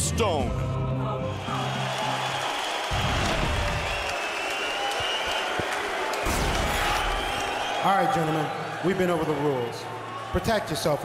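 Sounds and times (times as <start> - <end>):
arena crowd noise: 1.3 - 11.0.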